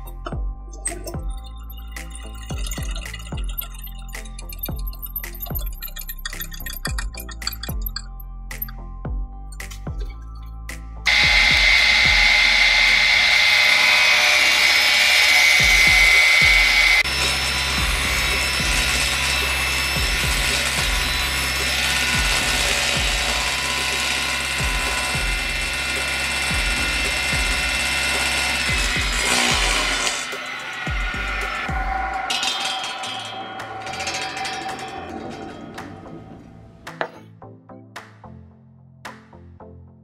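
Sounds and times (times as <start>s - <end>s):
mechanical whirring: 11.1s - 36.2s.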